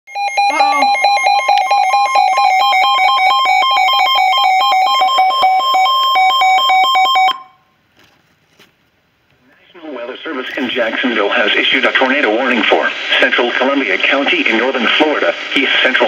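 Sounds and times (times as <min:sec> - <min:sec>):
two-tone warbling alert alarm: 0:00.1 - 0:07.6.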